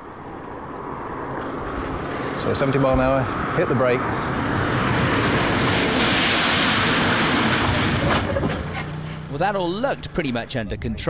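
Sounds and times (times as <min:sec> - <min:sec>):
tyre spray hiss on wet road: 0:00.2 - 0:03.5, 0:04.1 - 0:09.3.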